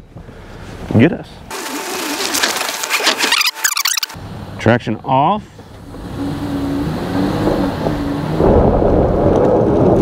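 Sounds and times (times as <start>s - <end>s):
engine pulling at low revs: 5.5s - 10.0s
tires spinning on dirt: 5.6s - 10.0s.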